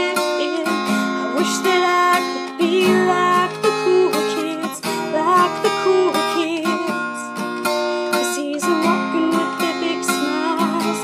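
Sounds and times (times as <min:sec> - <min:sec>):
acoustic guitar strumming: 0:00.0 - 0:11.0
woman singing: 0:00.0 - 0:11.0.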